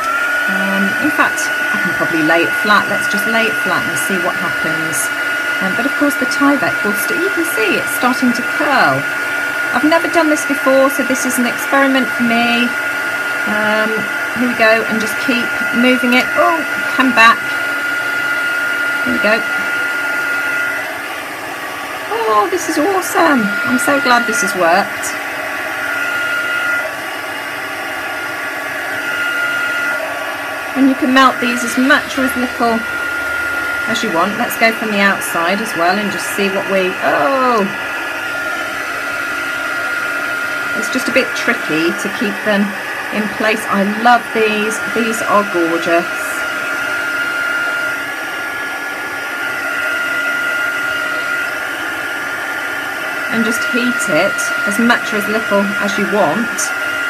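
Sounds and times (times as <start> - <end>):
heat gun fan blowing hiss: 0.0 - 57.0.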